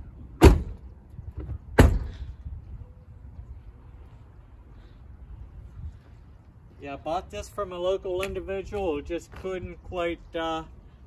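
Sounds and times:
car doors slamming shut: 0.4s - 0.8s, 1.8s - 2.2s.

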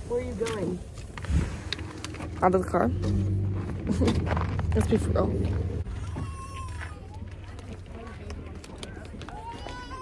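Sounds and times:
steady low rumble: 0.8s - 6.2s
faint voices: 4.8s - 10.0s.

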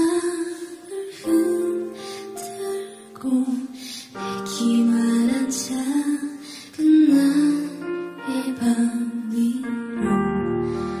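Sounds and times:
soft instrumental accompaniment: 0.0s - 11.0s
woman singing a slow ballad: 0.0s - 11.0s
singer breathing: 10.6s - 11.0s.

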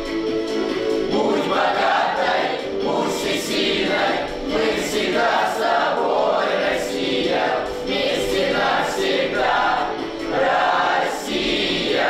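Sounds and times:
children singing in chorus: 1.1s - 12.0s.

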